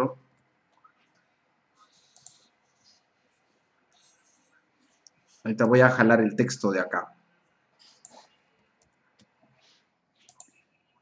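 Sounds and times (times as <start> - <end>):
faint computer clicks: 0.3 - 3.0, 7.8 - 11.0.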